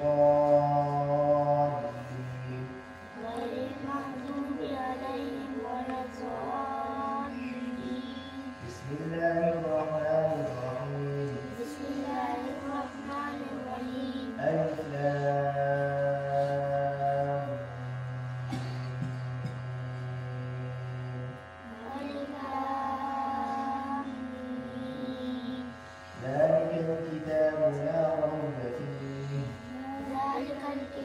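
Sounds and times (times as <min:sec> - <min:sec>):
person chanting a recitation: 0:00.0 - 0:18.3, 0:20.2 - 0:31.0.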